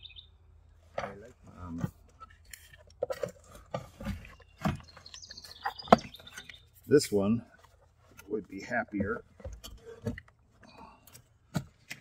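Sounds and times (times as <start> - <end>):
bird chirping: 0.0 - 0.4, 4.0 - 7.4.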